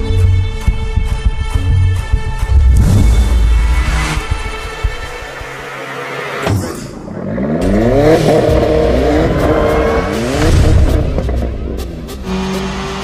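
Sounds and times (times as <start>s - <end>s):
background music: 0.0s - 13.0s
car engine revving: 2.5s - 6.4s, 7.1s - 13.0s.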